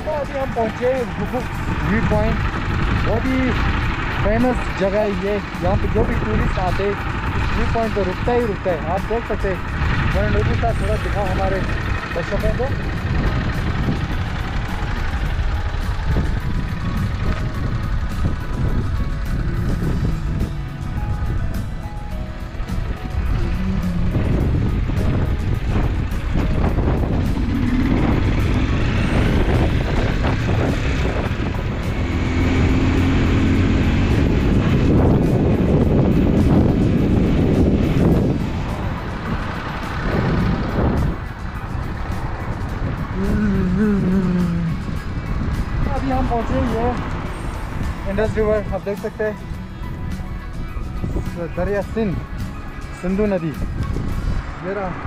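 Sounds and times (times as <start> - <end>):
background music: 0.0 - 55.0
motorcycle engine rumble: 0.0 - 55.0
wind on microphone: 9.5 - 55.0.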